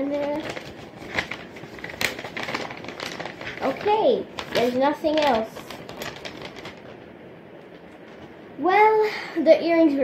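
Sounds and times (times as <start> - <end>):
paper bag rustling and tapping: 0.0 - 7.1.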